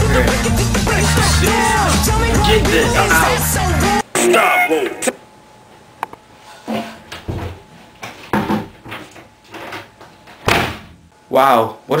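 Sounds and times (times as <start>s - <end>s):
door slamming shut: 10.4s - 11.0s.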